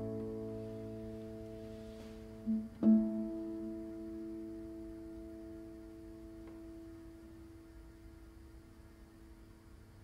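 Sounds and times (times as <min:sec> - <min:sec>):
classical guitar chord ringing: 0:00.0 - 0:08.6.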